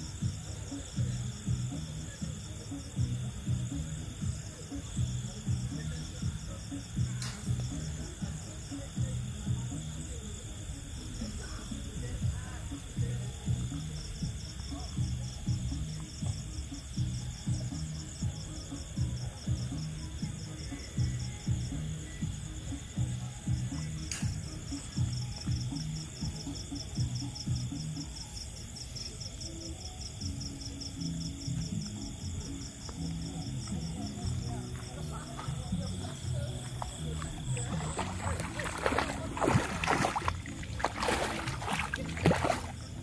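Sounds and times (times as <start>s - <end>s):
background music with low beat: 0.0s - 43.0s
crickets trilling: 0.0s - 43.0s.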